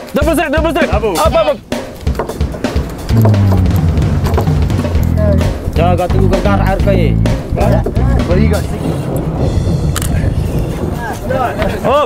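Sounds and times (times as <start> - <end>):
wind buffeting microphone: 2.9 - 12.0.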